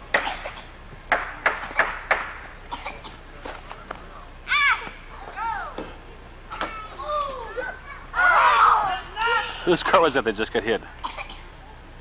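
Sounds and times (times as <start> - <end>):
short sharp knocks: 1.1 - 2.4
children shouting: 4.5 - 5.8, 6.5 - 9.7.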